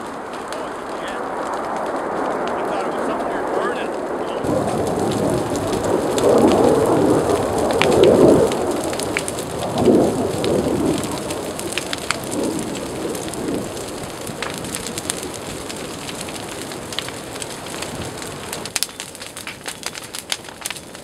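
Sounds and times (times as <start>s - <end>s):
fire crackles and pops: 0.0s - 21.0s
flames rushing: 0.0s - 21.0s.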